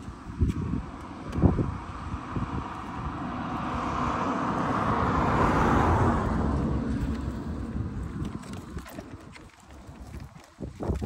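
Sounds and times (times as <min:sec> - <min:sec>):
wind buffeting microphone: 0:00.0 - 0:11.0
car passing: 0:00.8 - 0:10.0.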